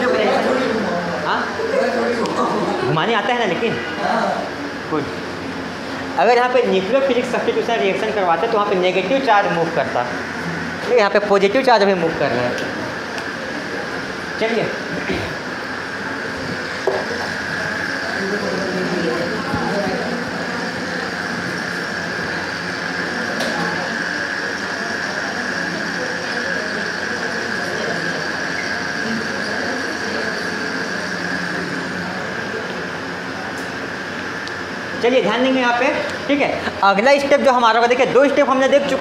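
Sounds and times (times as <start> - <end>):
steady room hum: 0.0 - 39.0.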